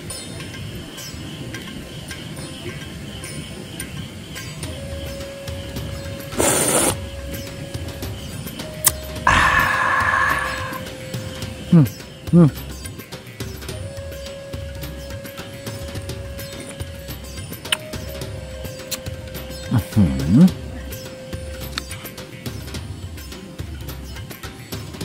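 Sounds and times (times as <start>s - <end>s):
faint background music: 0.0s - 25.0s
person slurping soup: 6.4s - 7.0s, 9.3s - 10.8s
person humming appreciatively: 9.3s - 11.1s.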